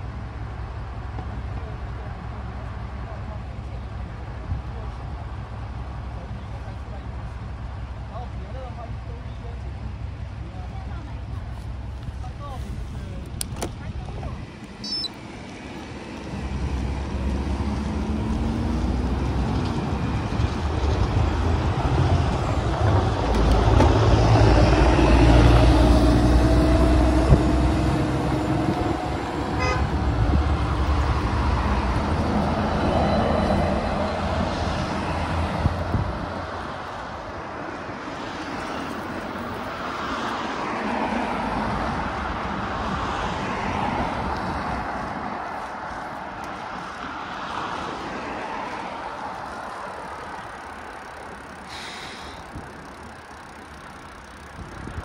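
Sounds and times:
motor traffic passing: 0.0 - 55.0.

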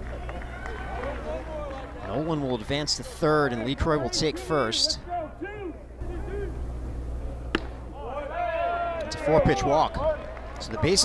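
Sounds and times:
baseball popping into mitt: 7.5 - 7.8.

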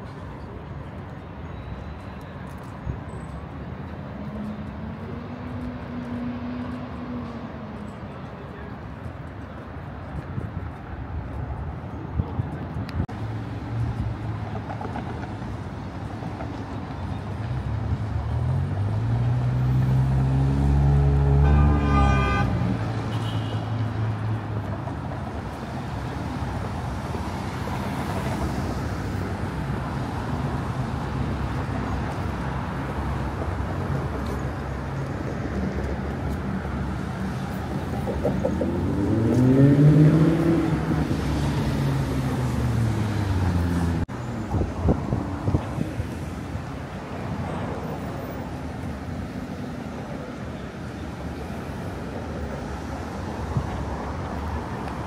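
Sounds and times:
cars driving past: 0.0 - 55.0
vehicle engine passing by: 18.2 - 21.8, 37.2 - 44.1.

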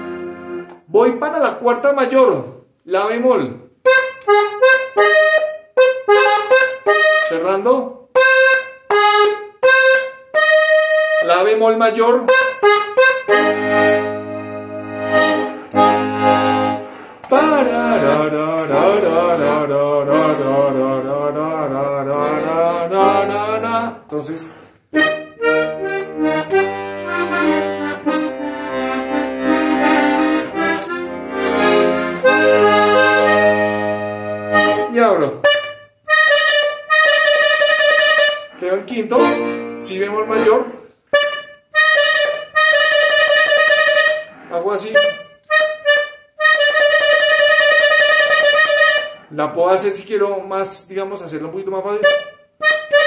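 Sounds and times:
button accordion playing: 0.0 - 0.9, 3.8 - 49.5, 51.6 - 53.0
man's voice: 0.9 - 3.7, 7.3 - 8.0, 11.2 - 12.4, 17.3 - 24.7, 34.8 - 35.5, 38.5 - 40.9, 44.5 - 45.2, 49.3 - 52.2.

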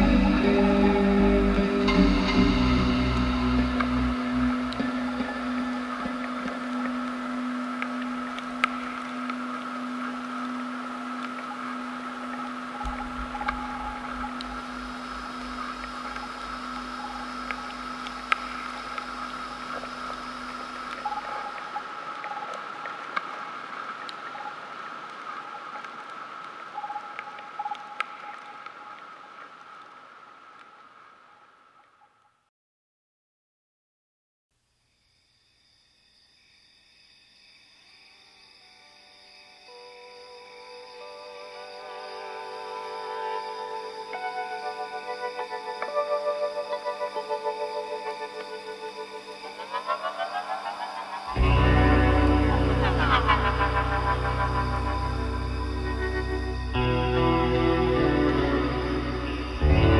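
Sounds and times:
dark ambient drone: 0.0 - 31.2, 39.6 - 59.9
faint clicks: 4.7 - 31.0.

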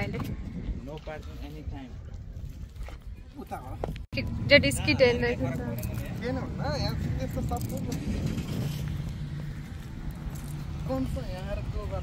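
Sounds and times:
steady low rumble: 3.8 - 12.0.

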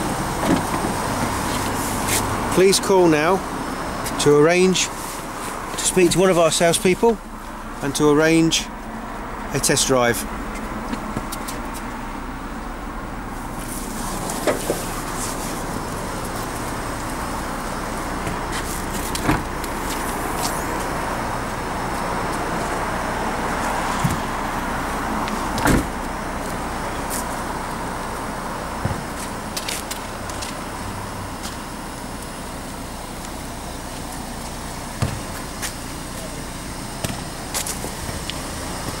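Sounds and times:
distant traffic: 0.0 - 39.0.

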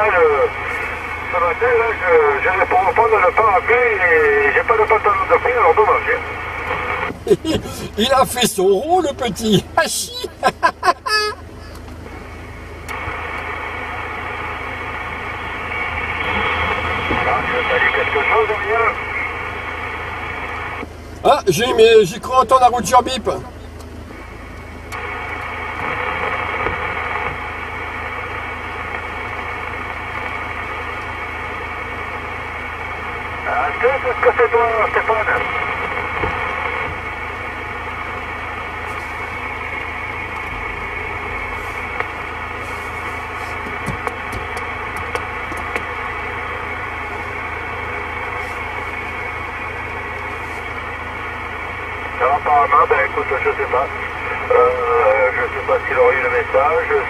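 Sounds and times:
radio static hiss: 0.0 - 11.0, 11.6 - 23.6, 24.9 - 57.0
garbled radio voice: 0.0 - 11.8, 17.1 - 19.3, 21.2 - 23.6, 33.4 - 35.6, 52.2 - 57.0
low hum: 0.0 - 57.0.

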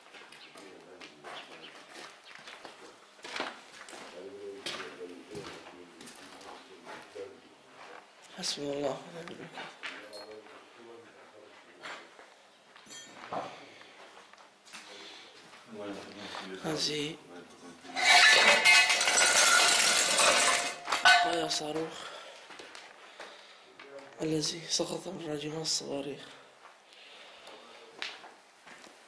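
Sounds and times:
ringing metal clink: 12.9 - 13.2, 17.9 - 21.8
metal debris rattling and scraping: 17.9 - 22.2.

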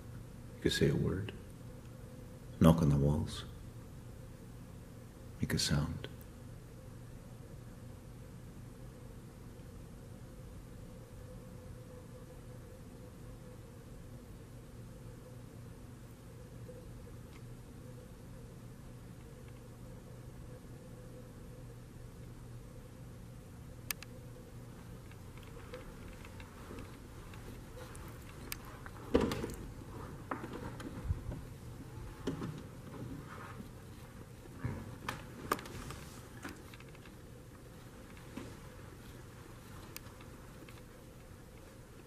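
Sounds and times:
low steady hum: 0.0 - 42.0.

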